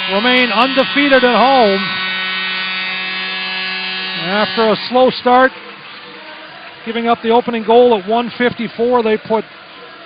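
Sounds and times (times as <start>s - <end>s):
electrical buzz: 0.0s - 9.6s
commentary speech: 4.2s - 10.0s.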